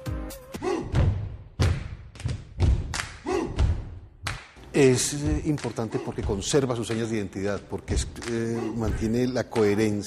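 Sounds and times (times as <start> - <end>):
deep sharp percussive thumps: 0.8 - 4.3, 6.2 - 6.8.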